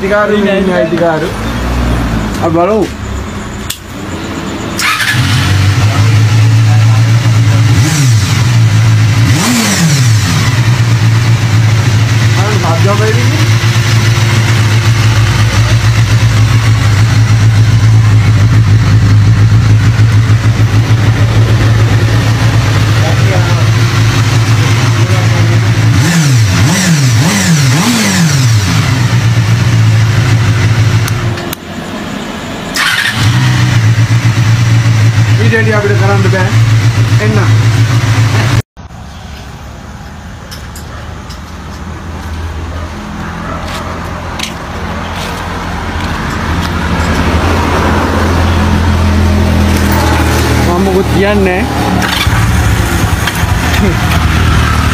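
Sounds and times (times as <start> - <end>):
motorcycle engine revving: 0.0 - 38.7, 41.4 - 54.9.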